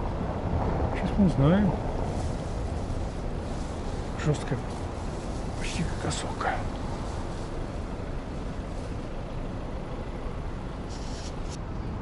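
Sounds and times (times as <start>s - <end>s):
distant city traffic rumble: 0.0s - 12.0s.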